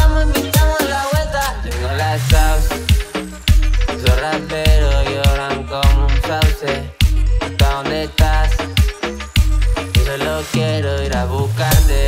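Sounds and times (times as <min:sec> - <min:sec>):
booming kick and bass beat: 0:00.0 - 0:12.0.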